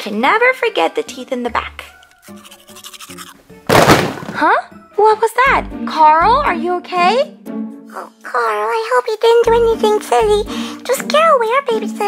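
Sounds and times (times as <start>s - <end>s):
soft background music: 0.0s - 12.0s
loud crash: 3.7s - 4.4s.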